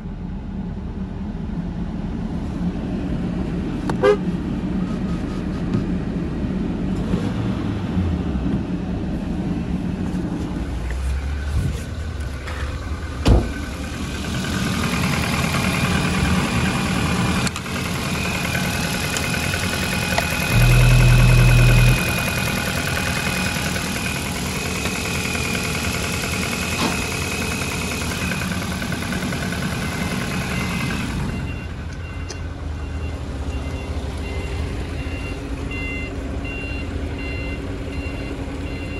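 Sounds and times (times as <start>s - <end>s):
car engine idling: 9.0s - 38.9s
steady high whine: 18.9s - 24.3s
loud low hum: 20.2s - 24.3s
quick high beeps: 20.5s - 22.2s.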